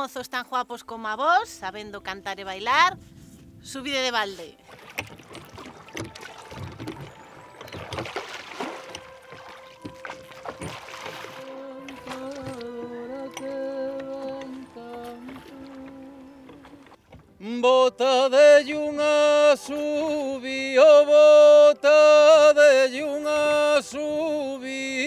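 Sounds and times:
oar splashing in water: 4.2s - 18.1s
boat knocking against water: 4.6s - 17.5s.

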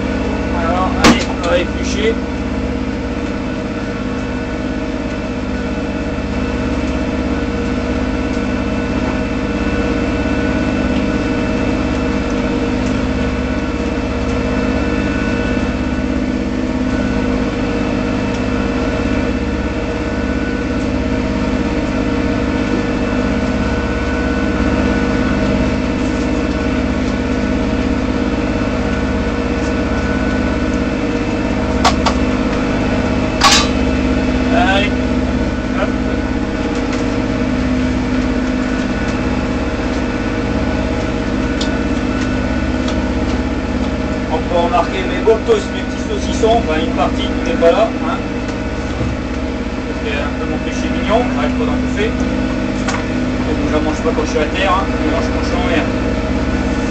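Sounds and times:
diesel engine hum: 0.0s - 56.9s.

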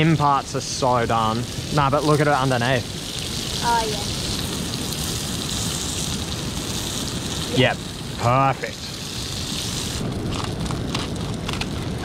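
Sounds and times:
fish fillets sizzling in oil: 0.0s - 11.2s
steady low rumble: 0.0s - 12.0s.

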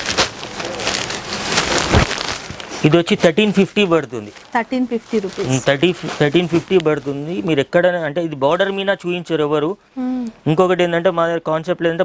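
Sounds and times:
silk fabric rustling and crackling: 0.0s - 7.7s.

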